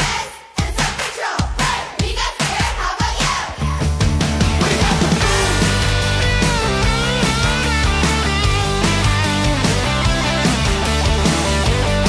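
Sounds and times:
upbeat music with pounding drums: 0.0s - 12.0s.

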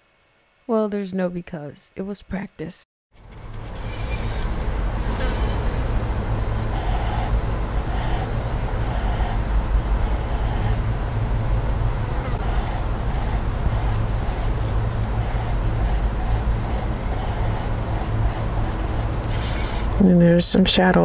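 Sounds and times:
steady high hiss: 4.4s - 21.0s.

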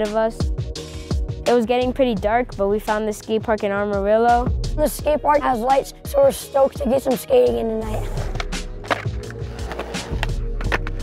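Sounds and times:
background music: 0.0s - 11.0s
skateboard wheels rolling on concrete: 7.9s - 11.0s
skateboard clacking on concrete: 8.3s - 11.0s.

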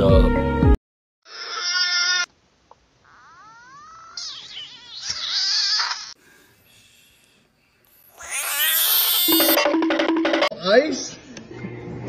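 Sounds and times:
frog screaming: 3.0s - 6.2s, 8.1s - 9.6s.

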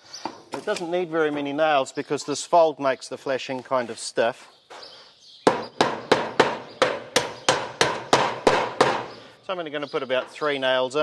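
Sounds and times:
hammer driving nail through metal: 5.5s - 9.1s.

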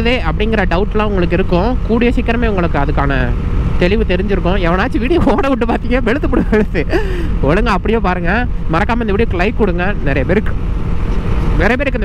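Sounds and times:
person talking: 0.0s - 10.6s, 11.5s - 12.0s
motorcycle rumble: 0.0s - 12.0s.

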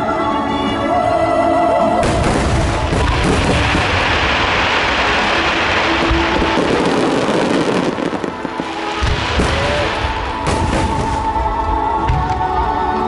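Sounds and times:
fireworks bursting: 2.0s - 11.6s.

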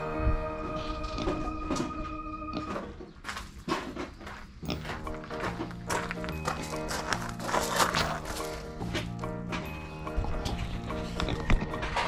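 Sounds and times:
background music with held notes: 0.0s - 3.1s, 4.6s - 12.0s
pig rooting in gravel: 2.5s - 12.0s.

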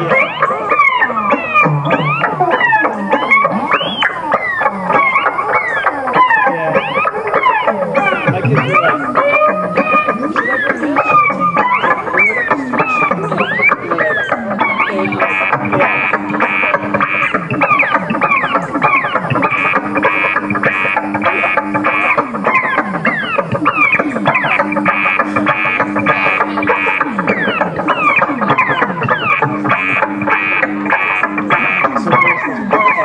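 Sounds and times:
pulsing high synth tone: 0.0s - 33.0s
synthesizer pitch sweeps: 0.0s - 33.0s.

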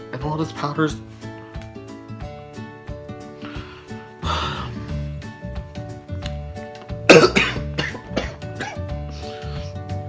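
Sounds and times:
background music: 0.0s - 10.0s
young man coughing: 7.1s - 9.0s.

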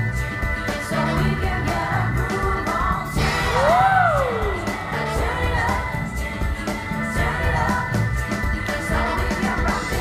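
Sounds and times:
dance music: 0.0s - 10.0s.

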